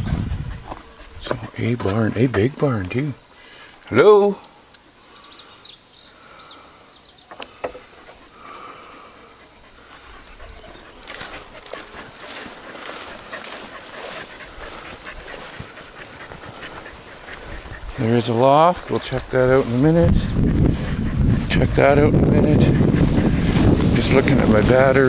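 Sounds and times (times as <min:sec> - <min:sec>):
panting close to microphone: 0:00.0 - 0:02.6, 0:07.8 - 0:25.0
footsteps through grass: 0:09.8 - 0:21.9, 0:22.8 - 0:25.0.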